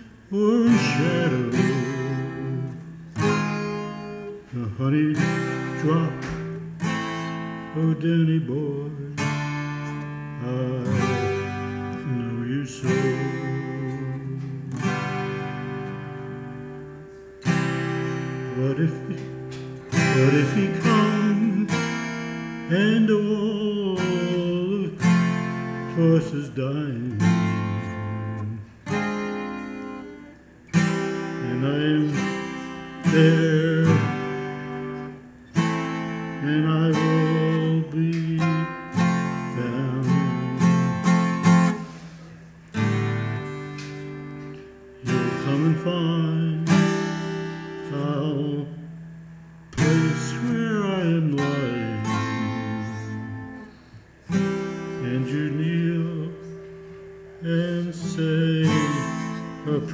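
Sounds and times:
twelve-string acoustic guitar: 0.0s - 59.9s.

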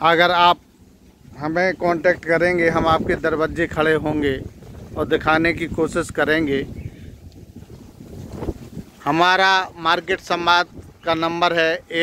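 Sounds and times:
wind buffeting microphone: 0.0s - 12.0s
faint tick: 7.3s - 7.5s.

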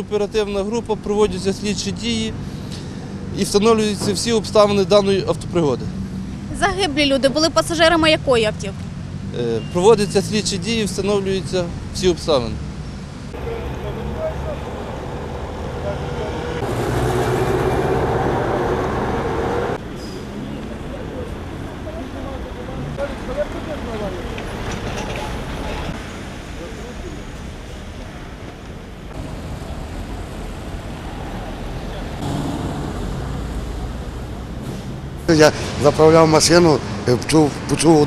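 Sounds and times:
rumble of passing vehicles: 0.0s - 38.0s.

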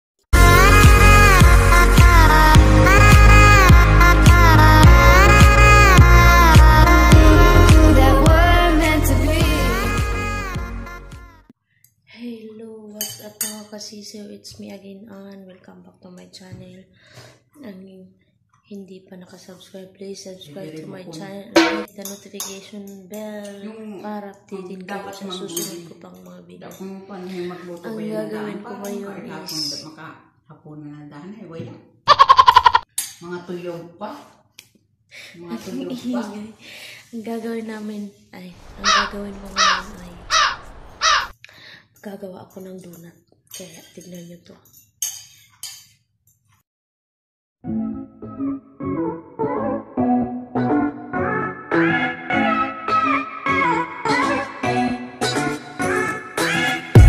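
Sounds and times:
woman speaking: 12.1s - 16.9s, 18.7s - 31.6s, 35.2s - 40.4s, 42.0s - 44.6s
crow cawing: 32.1s - 32.8s, 38.6s - 41.3s.

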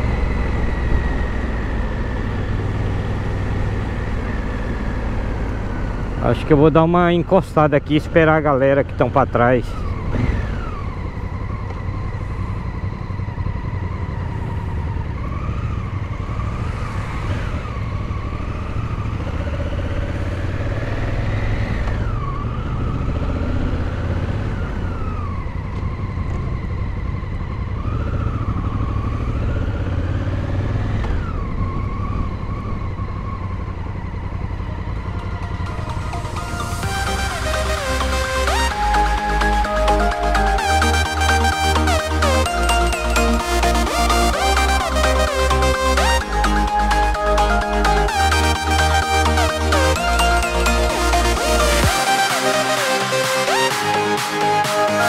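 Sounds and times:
motorcycle engine shifting gears: 0.0s - 53.1s.

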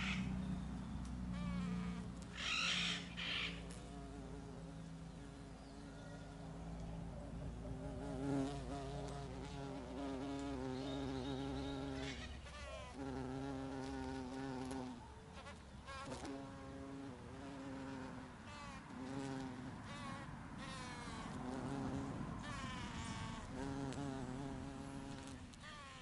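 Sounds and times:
flying insect buzzing: 1.1s - 5.5s, 7.7s - 26.0s.

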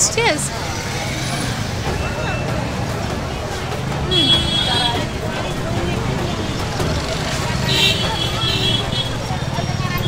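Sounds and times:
chatter of passers-by: 0.0s - 10.0s
traffic noise: 0.0s - 10.0s.

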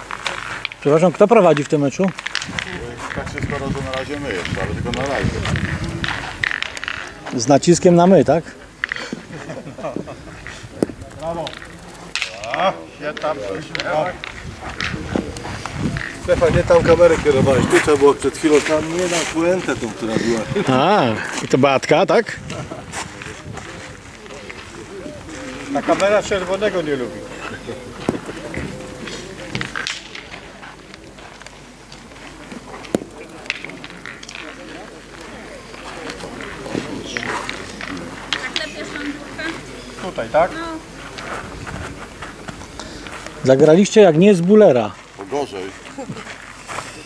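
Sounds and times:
background voices talking: 0.0s - 47.0s.

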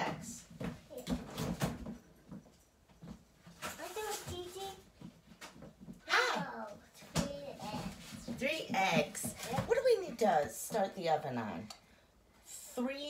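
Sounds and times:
young child's voice: 3.8s - 4.9s, 6.1s - 8.1s
woman's voice: 8.3s - 11.8s.

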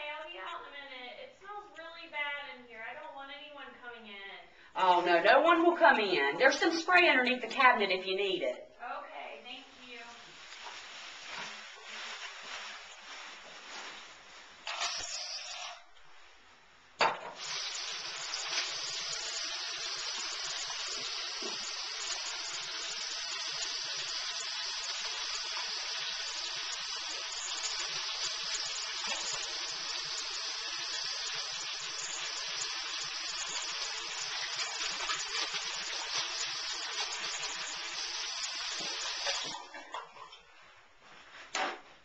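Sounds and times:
tap water running: 14.6s - 15.8s, 17.0s - 40.4s.

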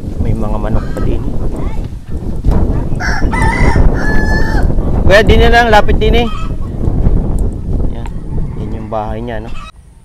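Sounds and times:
rooster crowing: 0.7s - 1.1s, 3.0s - 4.8s, 8.1s - 9.8s.

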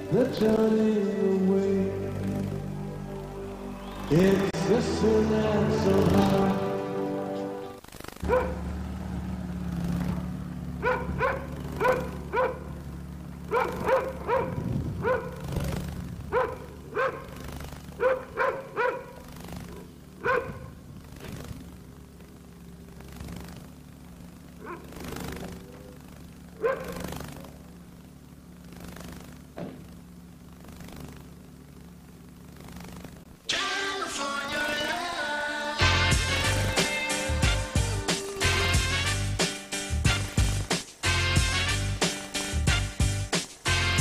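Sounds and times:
steady low hum: 0.0s - 44.0s
dog barking: 8.2s - 8.6s, 10.8s - 12.7s, 13.5s - 15.4s, 16.3s - 17.4s, 18.0s - 20.7s, 24.6s - 25.0s, 26.6s - 27.1s.

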